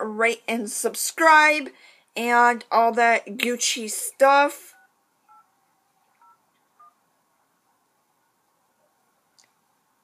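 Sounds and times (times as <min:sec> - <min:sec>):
faint touch-tone beeps: 0:04.6 - 0:07.0.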